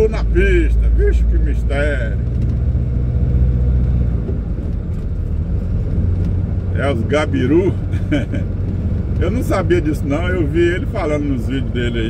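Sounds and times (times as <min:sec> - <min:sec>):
truck diesel engine droning: 0:00.0 - 0:12.0.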